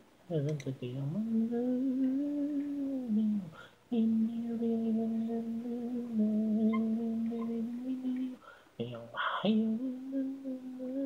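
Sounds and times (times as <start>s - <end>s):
person humming: 0.3s - 11.0s.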